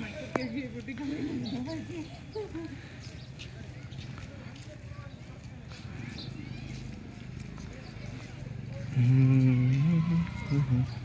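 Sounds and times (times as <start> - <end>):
indistinct voices talking: 0.0 - 11.0.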